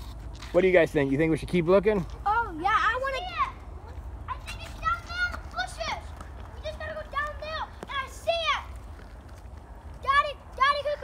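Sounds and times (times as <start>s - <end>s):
children calling out: 2.3s - 8.9s, 10.0s - 11.0s.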